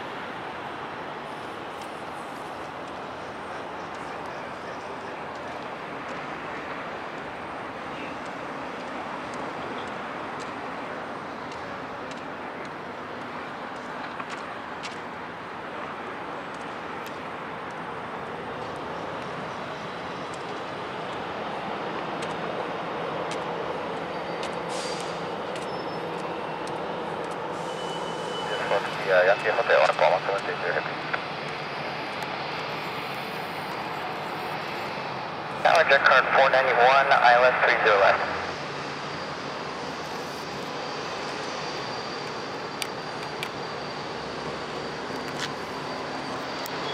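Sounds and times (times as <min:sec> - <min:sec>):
jet engines at taxi power: 0:00.0 - 0:46.9.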